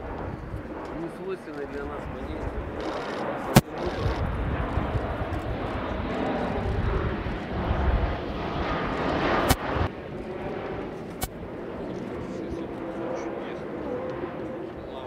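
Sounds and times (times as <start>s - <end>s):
distant jet sound: 0.0s - 15.0s
jet engine rumble: 0.0s - 15.0s.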